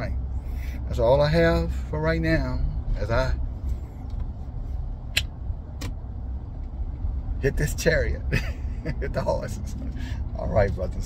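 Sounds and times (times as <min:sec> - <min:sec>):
car cabin rumble: 0:00.9 - 0:11.0.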